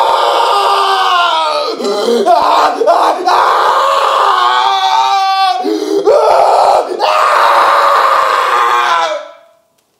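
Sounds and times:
man screaming in pain: 0.0 - 9.5.

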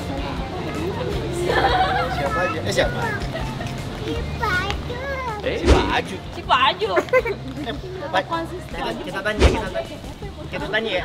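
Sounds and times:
background music: 0.0 - 11.0
people talking playfully: 0.0 - 11.0.

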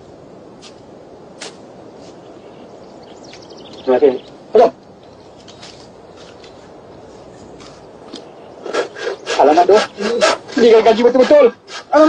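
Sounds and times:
film soundtrack hiss: 0.0 - 12.0.

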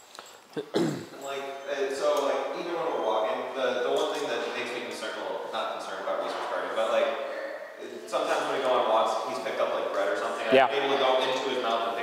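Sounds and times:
man speaking indistinctly: 0.6 - 12.0.

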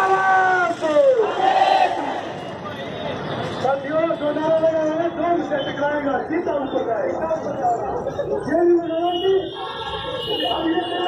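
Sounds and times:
crowd chanting slogan: 1.2 - 2.4.

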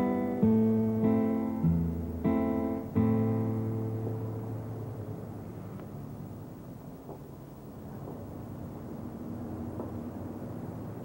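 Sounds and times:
acoustic guitar chord ringing: 0.0 - 5.1
faint steady hiss: 0.0 - 11.0.

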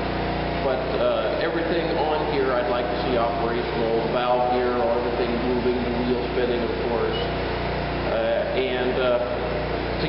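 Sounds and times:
portable generator running: 0.0 - 10.0
man talking: 0.6 - 7.3, 8.1 - 10.0.

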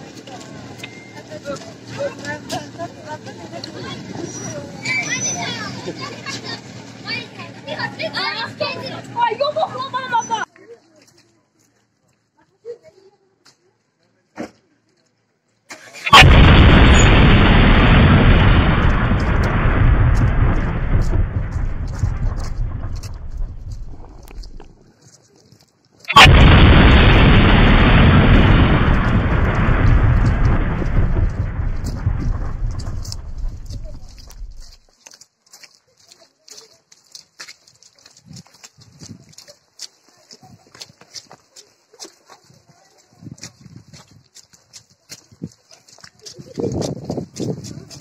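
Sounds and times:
faint children's voices: 0.0 - 15.9, 33.6 - 48.0
footsteps on muddy dirt road: 0.0 - 16.4, 17.2 - 48.0
wind buffeting microphone: 16.2 - 24.9, 26.2 - 34.8, 43.1 - 44.4, 46.2 - 48.0.

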